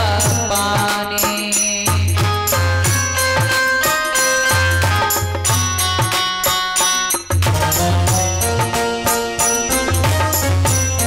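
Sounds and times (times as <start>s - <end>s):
woman singing devotional song: 0.0s - 3.0s
held instrumental notes: 0.0s - 11.0s
regular drum beat: 0.0s - 11.0s.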